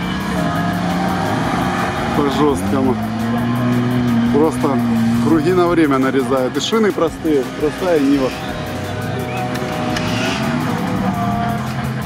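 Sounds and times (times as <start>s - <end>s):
background music: 0.0s - 12.0s
car engine running under load: 0.0s - 12.0s.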